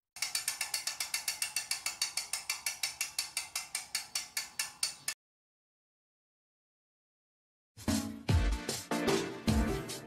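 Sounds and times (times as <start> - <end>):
bicycle freewheel clicking: 0.2 - 5.2.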